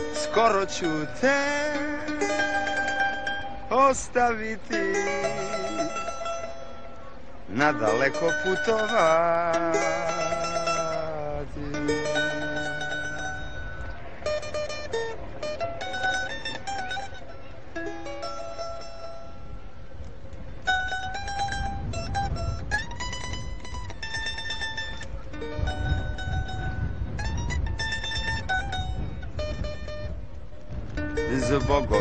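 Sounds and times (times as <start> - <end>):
plucked-string folk melody: 0.0 - 32.0.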